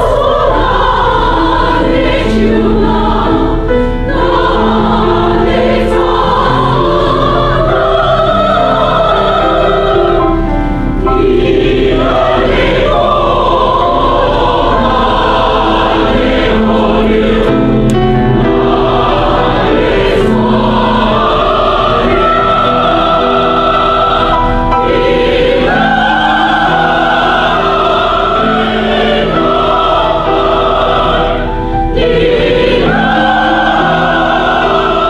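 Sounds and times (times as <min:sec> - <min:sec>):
mixed choir singing: 0:00.0 - 0:35.0.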